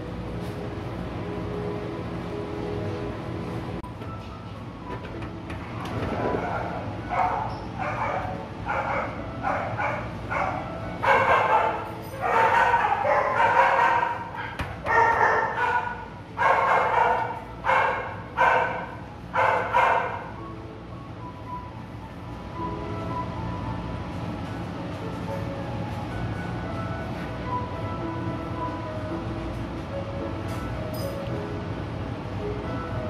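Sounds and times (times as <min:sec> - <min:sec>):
dog barking: 0:06.4 - 0:20.3.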